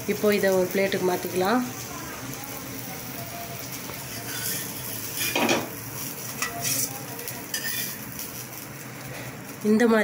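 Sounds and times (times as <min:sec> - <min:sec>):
light sizzle of frying: 0:00.0 - 0:10.0
spatula scraping a flat pan: 0:04.0 - 0:06.9, 0:07.5 - 0:08.0.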